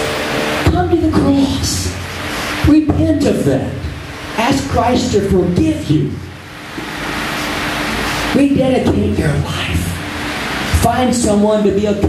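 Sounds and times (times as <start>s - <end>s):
fans and air conditioning: 0.0s - 12.0s.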